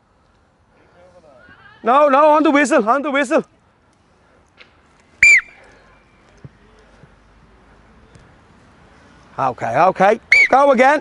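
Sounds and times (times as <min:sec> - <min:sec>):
whistle blast: 0:05.2 - 0:05.6, 0:10.3 - 0:10.6.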